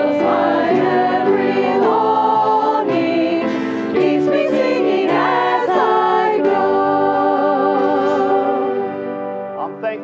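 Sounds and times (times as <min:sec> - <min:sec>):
group singing a hymn: 0:00.0 - 0:09.4.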